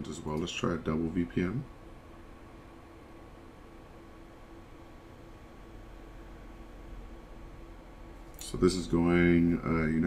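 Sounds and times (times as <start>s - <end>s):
faint hum: 0.0s - 10.0s
low steady hiss: 0.0s - 10.0s.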